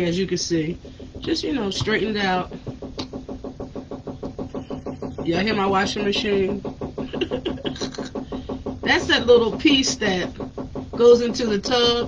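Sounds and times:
washing machine rattling: 0.0s - 12.0s.

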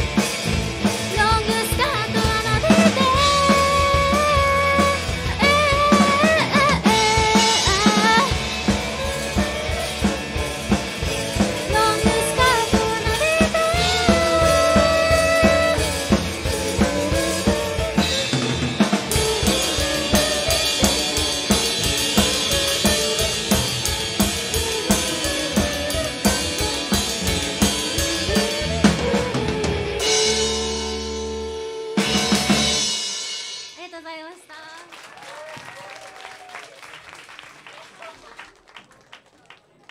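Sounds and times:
drum kit with cymbals: 0.0s - 34.5s
rock band playing: 0.0s - 34.9s.

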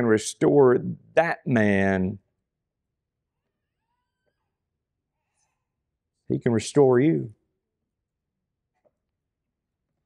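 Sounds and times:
man speaking: 0.0s - 2.2s, 6.3s - 7.4s.

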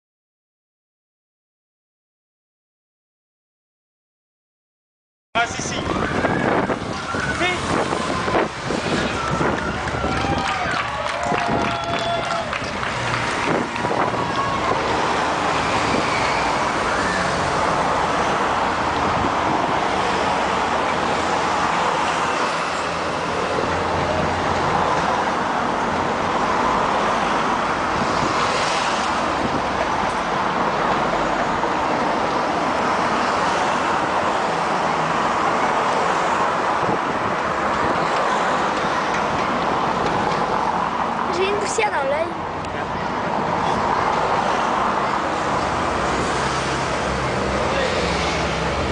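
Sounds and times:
cars and motorbikes passing: 5.4s - 48.9s.

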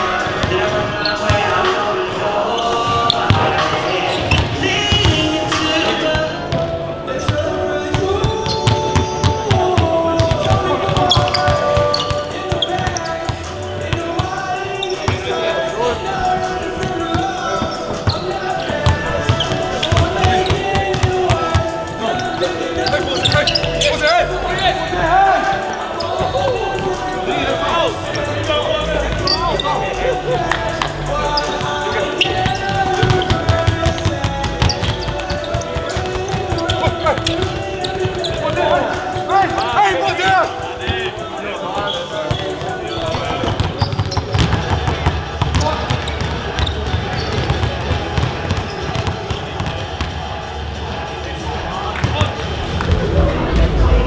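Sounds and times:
indistinct voices: 0.0s - 54.0s
music: 0.0s - 54.0s
basketballs bouncing on hardwood: 16.8s - 21.7s, 32.3s - 39.6s, 42.3s - 50.2s.

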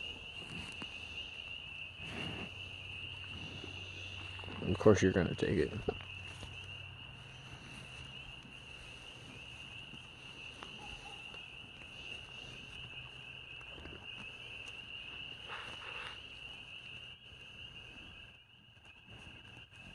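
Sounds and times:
night insects chorus: 0.0s - 19.9s.

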